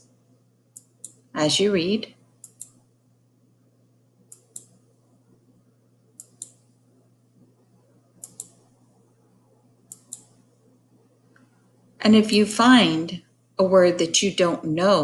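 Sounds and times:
faint low hum: 0:00.0 - 0:15.0
computer mouse clicking: 0:00.7 - 0:01.3, 0:02.4 - 0:02.8, 0:04.3 - 0:04.8, 0:06.2 - 0:06.7, 0:08.2 - 0:08.7, 0:09.8 - 0:10.4.

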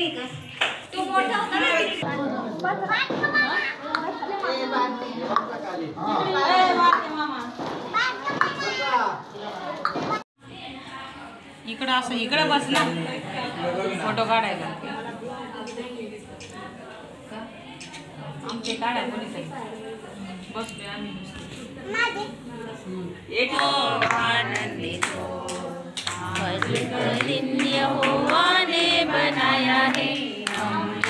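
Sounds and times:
children and adults chattering: 0:00.0 - 0:27.3
children talking and calling out: 0:03.0 - 0:05.3, 0:07.8 - 0:11.4, 0:21.8 - 0:22.5.

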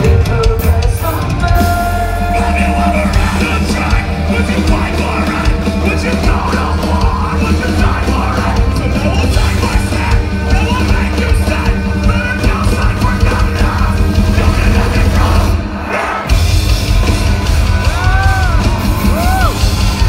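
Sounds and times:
distorted guitars: 0:00.0 - 0:20.0
heavy drums: 0:00.0 - 0:20.0.

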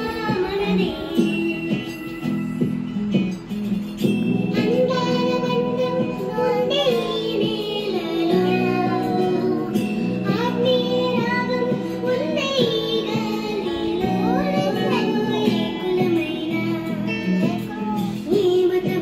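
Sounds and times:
child singing: 0:00.0 - 0:01.9, 0:04.5 - 0:19.0
instrumental backing music: 0:00.0 - 0:19.0.

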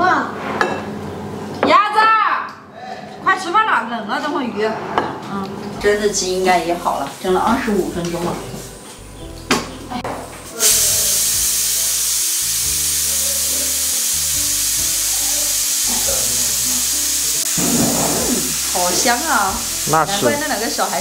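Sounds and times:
pressure cooker steam hissing: 0:10.5 - 0:21.0.

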